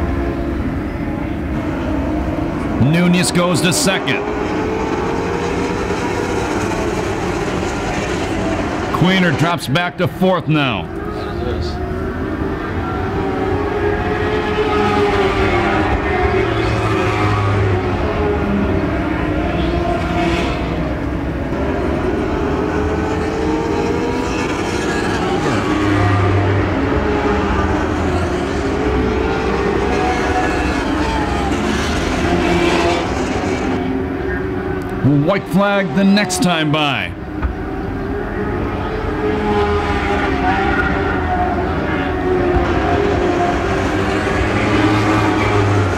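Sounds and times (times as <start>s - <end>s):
racing car engines: 0.0s - 45.9s.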